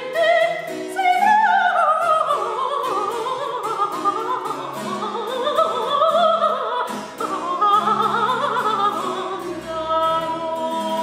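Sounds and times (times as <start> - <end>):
soprano singing: 0.0 - 11.0.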